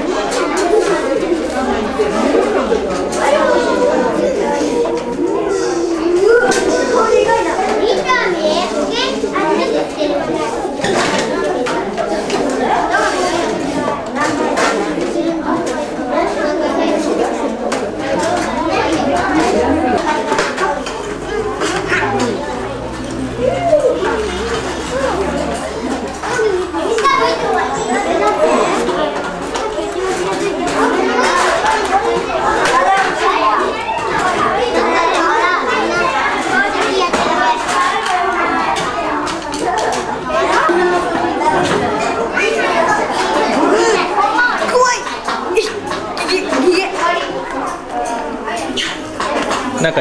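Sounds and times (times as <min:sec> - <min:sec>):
children chattering and calling out: 0:00.0 - 0:50.0.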